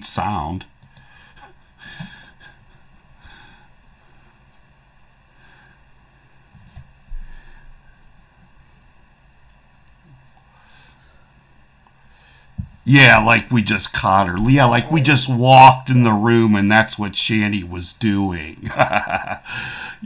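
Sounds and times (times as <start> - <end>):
woman breathing softly: 7.1 - 8.2.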